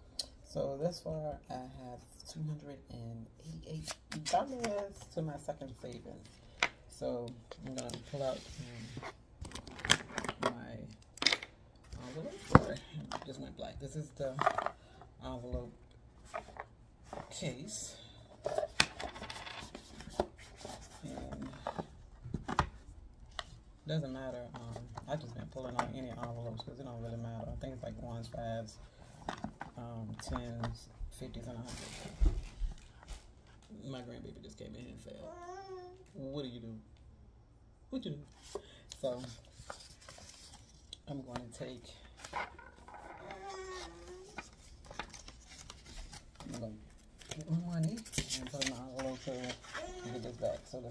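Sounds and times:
paper envelopes rustling: 39.2s - 50.9s
child vocalizing: 43.2s - 44.4s.

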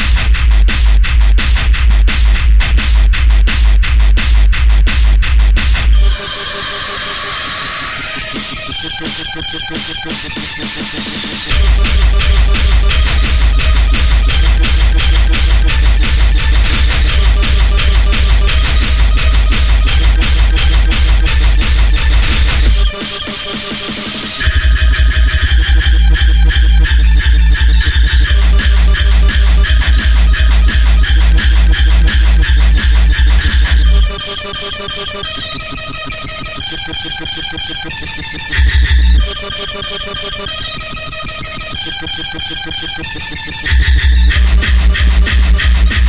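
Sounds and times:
pounding kick and bass: 0.0s - 6.2s, 8.8s - 34.4s, 38.5s - 39.4s, 43.6s - 46.0s
high synth lines: 5.9s - 10.4s, 11.1s - 46.0s.

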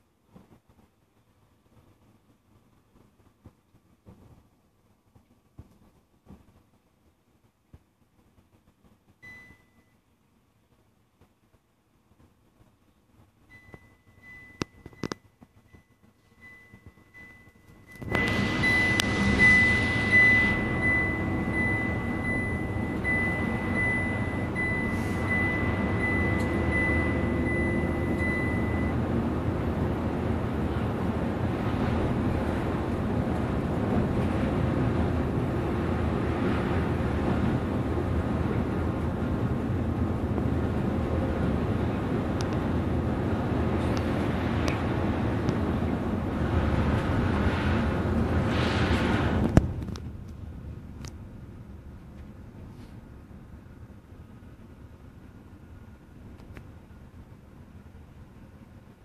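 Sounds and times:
bus cabin engine and tyre drone: 0.0s - 59.0s
pulsing high tone: 16.4s - 29.0s.

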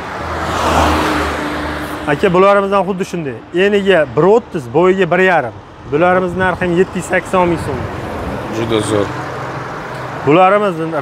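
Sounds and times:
car passing: 0.0s - 11.0s.

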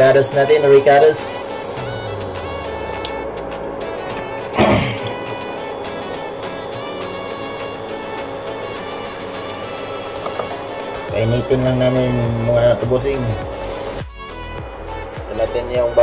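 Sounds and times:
background music sustained tones: 0.0s - 16.0s.

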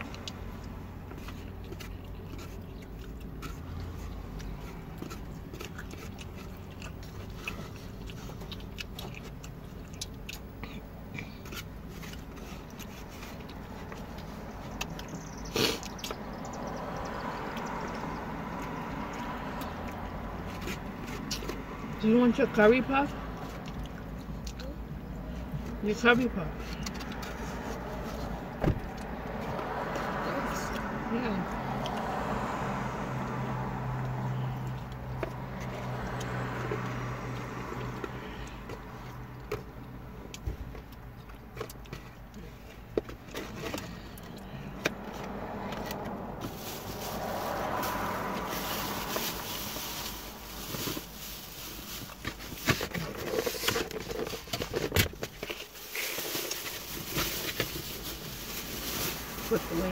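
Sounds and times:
plastic bag crinkling: 46.4s - 59.9s.

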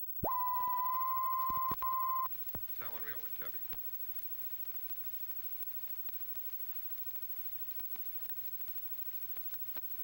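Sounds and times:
high-pitched test tone: 0.2s - 2.3s
film crackle clicks: 2.3s - 10.0s.

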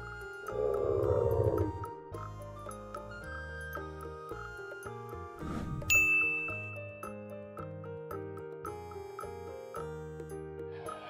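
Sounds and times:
light children's music: 0.0s - 11.0s
bell-like ding: 5.9s - 7.3s.

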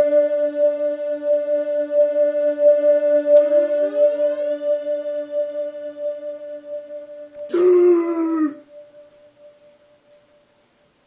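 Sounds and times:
held synth note: 3.6s - 9.0s.

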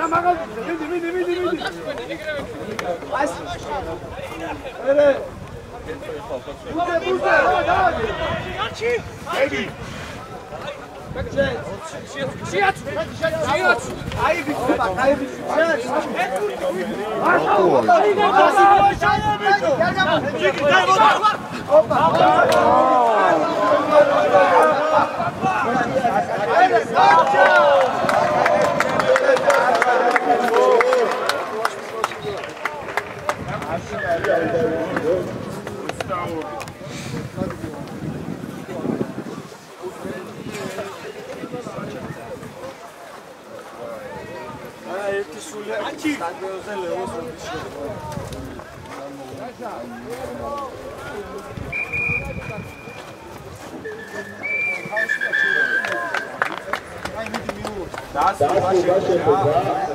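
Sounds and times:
people shouting: 17.2s - 31.5s
players calling out: 49.4s - 59.9s
long whistle tones: 51.7s - 53.0s, 53.8s - 56.3s.

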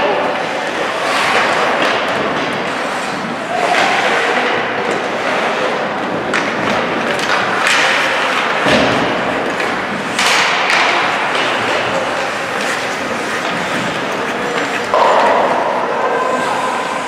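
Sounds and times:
skates scraping ice: 0.0s - 17.0s
thuds against rink boards: 6.1s - 15.8s.

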